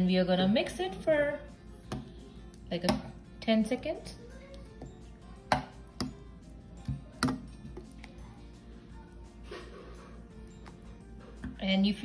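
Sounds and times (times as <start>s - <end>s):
spoon stirring thick food: 1.5s - 8.6s.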